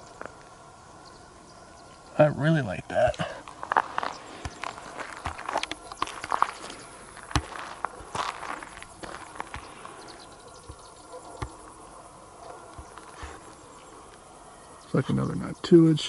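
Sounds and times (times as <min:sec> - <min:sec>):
footsteps: 0:03.1 - 0:11.8, 0:12.5 - 0:13.6.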